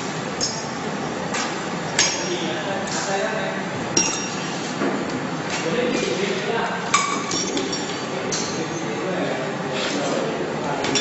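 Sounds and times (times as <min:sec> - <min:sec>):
machine and room noise: 0:00.0 - 0:11.0.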